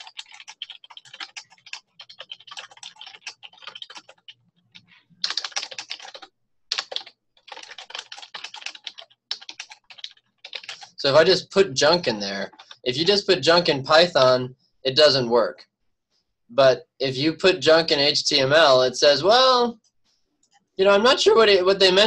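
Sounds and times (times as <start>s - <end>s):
computer keyboard typing: 0.0s - 13.2s.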